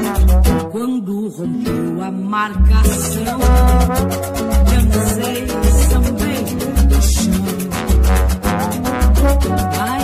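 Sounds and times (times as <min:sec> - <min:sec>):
acoustic guitars and percussion: 0:00.0 - 0:10.0.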